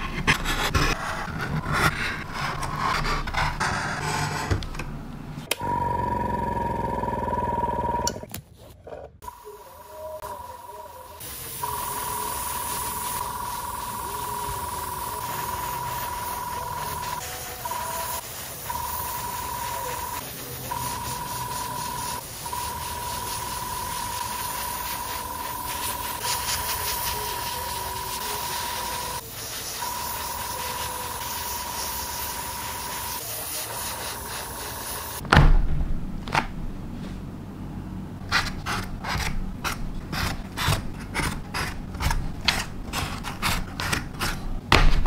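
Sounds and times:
airbrush hissing with whistle: 9.3s - 35.2s
loud knock: 35.2s - 36.5s.

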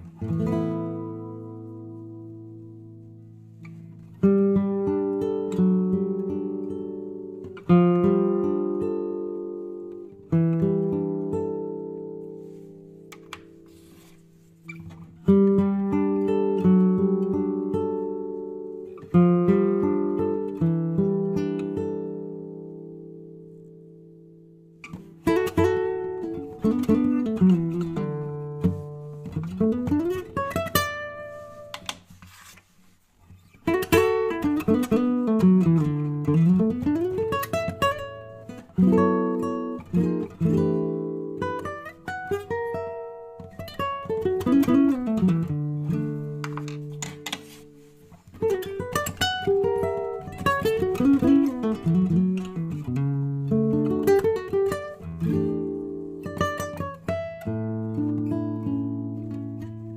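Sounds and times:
classical guitar picked runs and chords: 0.0s - 59.9s.

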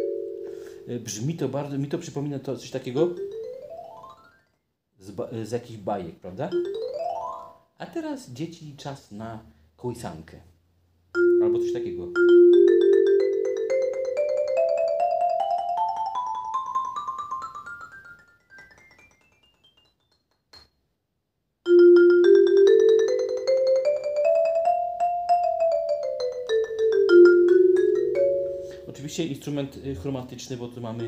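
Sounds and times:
xylophone fast roll: 6.5s - 7.6s, 11.2s - 20.7s, 21.7s - 29.0s.

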